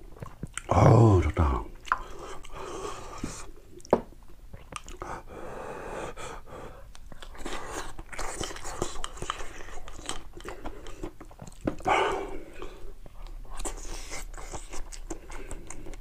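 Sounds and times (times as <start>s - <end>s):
man chewing crunchy food: 0.0s - 5.3s, 6.7s - 16.0s.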